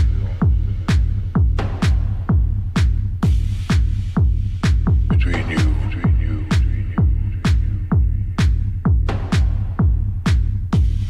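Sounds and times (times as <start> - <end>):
bass line: 0.0 - 11.0
kick drum: 0.0 - 11.0.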